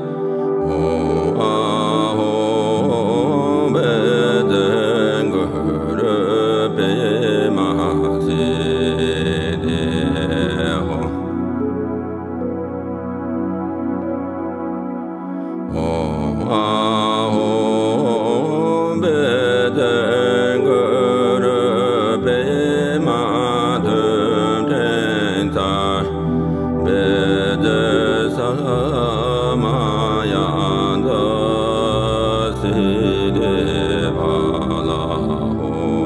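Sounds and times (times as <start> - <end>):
man chanting a mantra: 0.0 - 11.4, 15.7 - 36.0
keyboard bass notes: 0.0 - 36.0.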